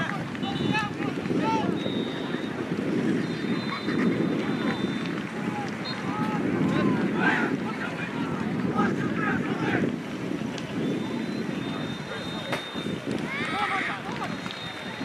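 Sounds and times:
distant voices shouting: 0.0s - 15.0s
wind buffeting microphone: 0.0s - 15.0s.

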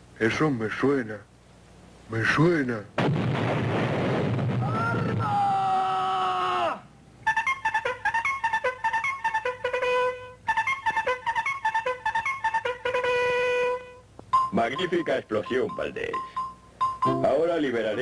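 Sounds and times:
cartoon explosion: 3.0s - 6.0s
brass tune: 7.2s - 14.1s.

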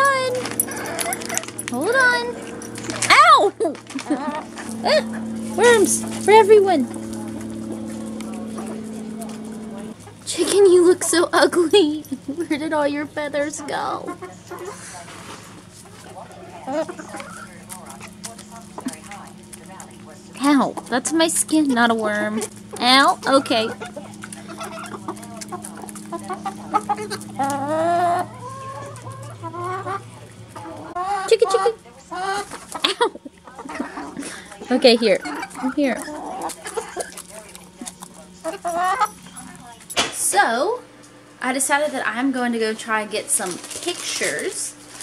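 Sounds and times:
chickens pecking on concrete: 0.0s - 12.7s, 13.9s - 40.0s, 42.9s - 45.0s
steady low hum: 0.0s - 45.0s
faint clucking: 13.9s - 39.3s
hen drawn-out call: 23.0s - 32.8s.

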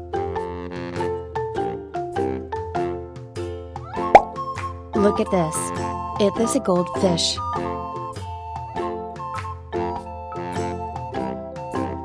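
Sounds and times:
loud plop rising in pitch: 4.1s - 4.4s.

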